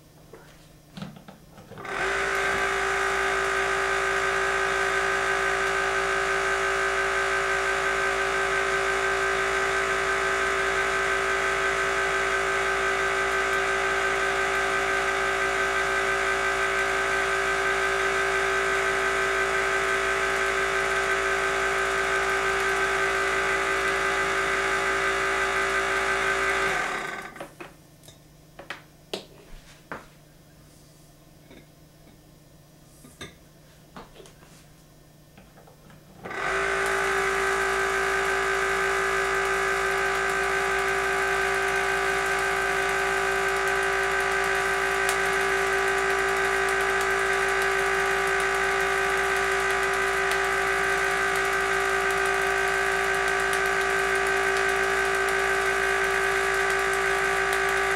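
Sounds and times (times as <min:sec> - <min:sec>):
electric motor whining: 0:01.8 - 0:27.4, 0:36.2 - 0:57.9.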